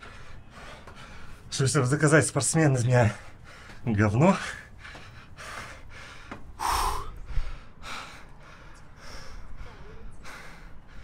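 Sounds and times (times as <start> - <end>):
man breathing heavily: 0.0 - 1.5, 3.1 - 11.0
man exhaling hard: 6.6 - 7.3.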